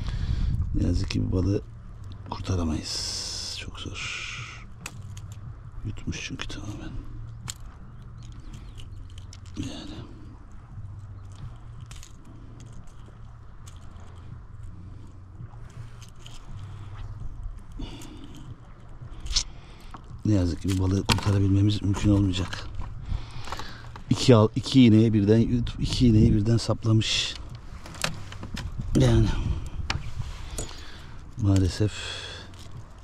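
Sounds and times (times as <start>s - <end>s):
low steady hum: 0.0s - 33.0s.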